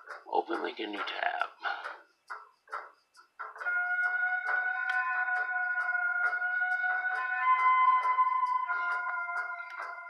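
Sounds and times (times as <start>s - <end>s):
music with quick steady beat: 0.0s - 10.0s.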